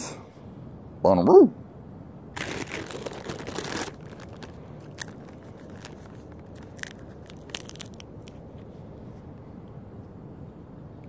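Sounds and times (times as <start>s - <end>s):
plastic bag crinkling: 2.4s - 8.6s
sharp crackles: 2.4s - 8.6s.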